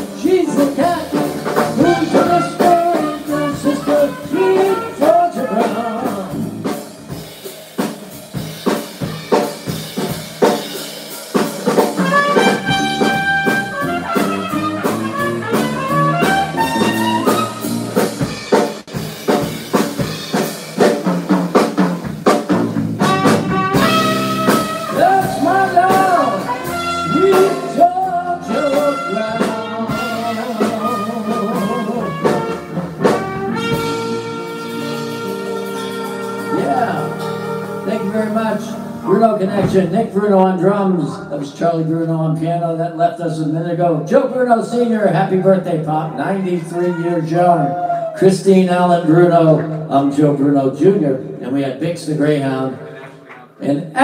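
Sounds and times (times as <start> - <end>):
trumpet: 0.0 - 6.5, 11.7 - 19.5, 22.9 - 39.8
drum kit beat: 0.0 - 41.6
grand piano: 0.0 - 51.4
electric bass: 0.0 - 52.8.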